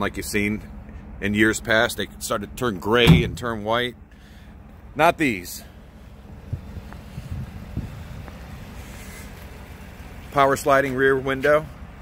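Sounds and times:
wind rumbling on microphone: 0:06.4 - 0:08.4.

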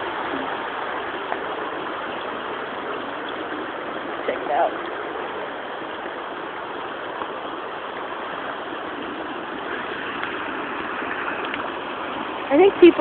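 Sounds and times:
river rapids rushing: 0:00.0 - 0:13.0.

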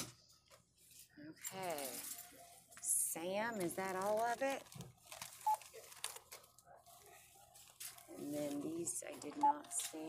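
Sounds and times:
plastic bag rustling: 0:00.7 - 0:10.0.

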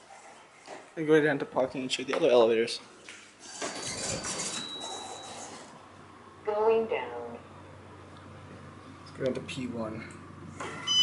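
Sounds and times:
elevator doors sliding open: 0:03.4 - 0:05.7.

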